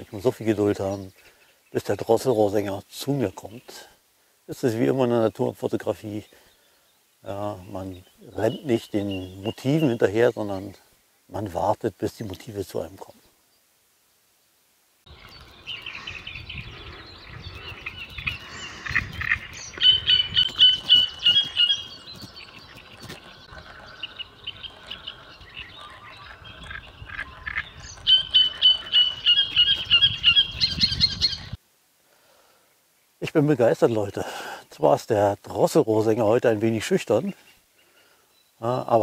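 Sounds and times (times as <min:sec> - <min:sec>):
quieter bird calls: 0:04.8 - 0:13.7, 0:15.1 - 0:31.6, 0:36.2 - 0:39.0
bird song high repeated notes: 0:15.1 - 0:31.6.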